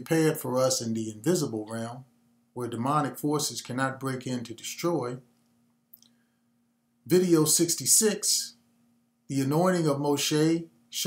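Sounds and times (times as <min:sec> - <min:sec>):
man speaking: 0:00.0 - 0:05.3, 0:07.1 - 0:08.6, 0:09.3 - 0:11.0
faint steady hum: 0:00.0 - 0:11.0.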